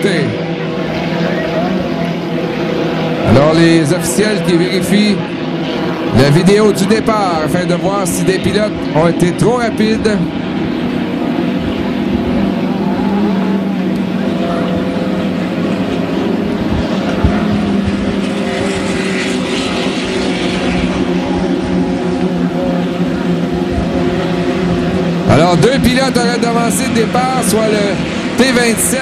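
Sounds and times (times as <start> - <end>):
hydroplane racing engines droning: 0.0 - 29.0.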